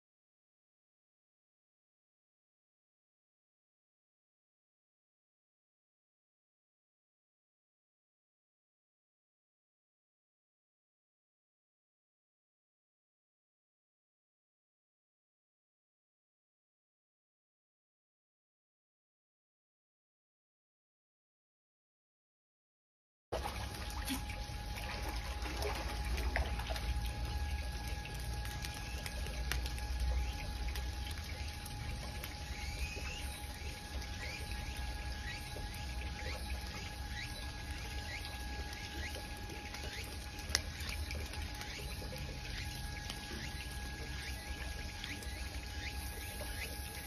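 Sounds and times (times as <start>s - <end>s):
water trickling: 23.4s - 47.0s.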